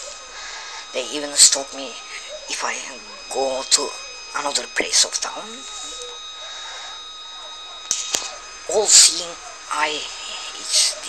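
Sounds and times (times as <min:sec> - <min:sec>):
faint high whine: 0:00.0 - 0:11.0
steady background hiss: 0:00.0 - 0:11.0
sharp click: 0:07.8 - 0:08.3.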